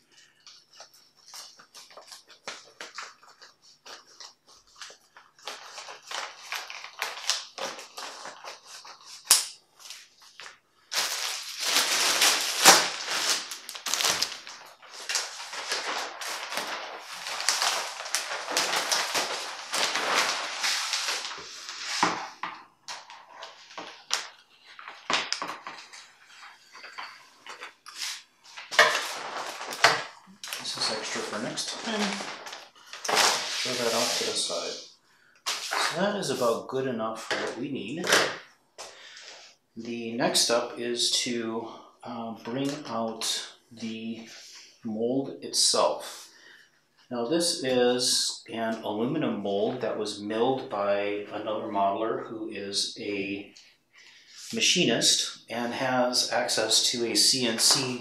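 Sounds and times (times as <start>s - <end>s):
plastic sheet crinkling: 0.2s - 36.6s, 56.4s - 58.0s.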